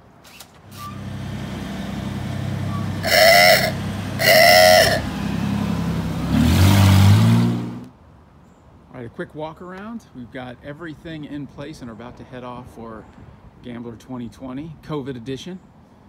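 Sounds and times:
engine revving: 0:00.6 - 0:07.9
car engine running: 0:00.7 - 0:07.9
car horn honks: 0:00.7 - 0:07.9.

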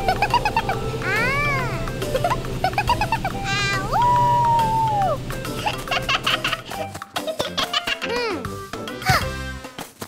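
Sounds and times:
background music: 0:00.0 - 0:10.0.

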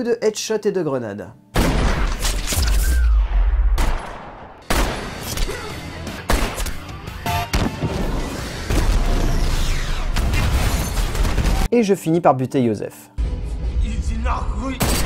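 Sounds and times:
gunshots: 0:01.6 - 0:11.7, 0:14.8 - 0:15.0
film music score: 0:01.6 - 0:15.0
explosions: 0:07.5 - 0:11.7.

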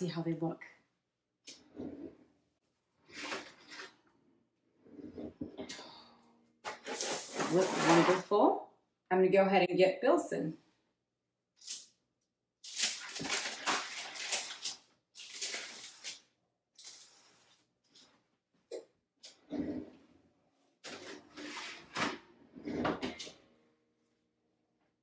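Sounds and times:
parchment paper rustling and scraping: 0:06.7 - 0:08.3, 0:12.7 - 0:18.2, 0:20.9 - 0:22.8.

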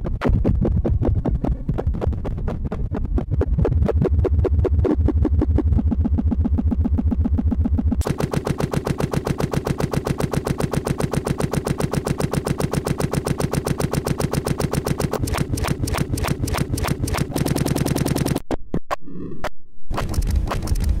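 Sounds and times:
rapid pulse of clicks: 0:00.0 - 0:18.4, 0:19.9 - 0:21.0
low droning synth: 0:03.8 - 0:17.4.

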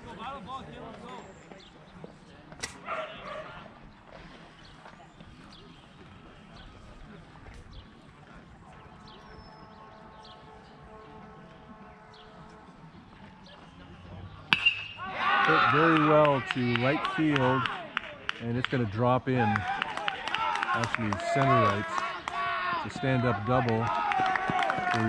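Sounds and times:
faint outdoor ambience: 0:00.0 - 0:25.0.

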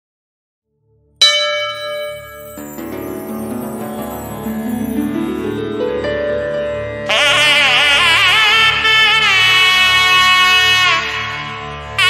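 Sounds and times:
bell ringing: 0:01.2 - 0:06.8.

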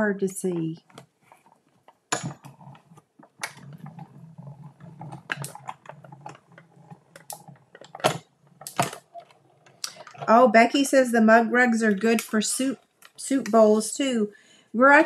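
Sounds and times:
die-cutting machine clicks and knocks: 0:04.9 - 0:09.8.

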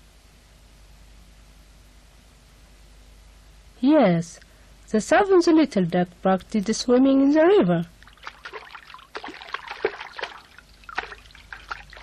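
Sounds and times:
duck paddling in water: 0:08.0 - 0:12.0.

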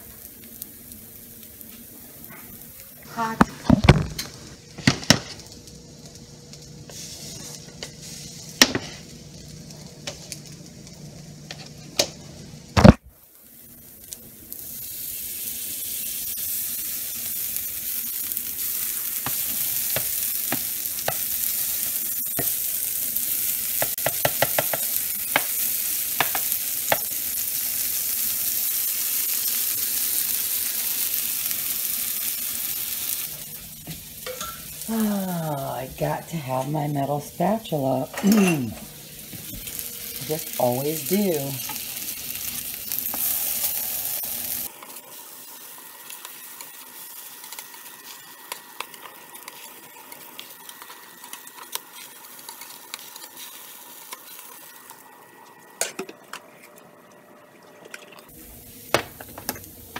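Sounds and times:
food sizzling in frying pan: 0:00.0 - 0:57.5, 0:58.2 - 0:59.9.

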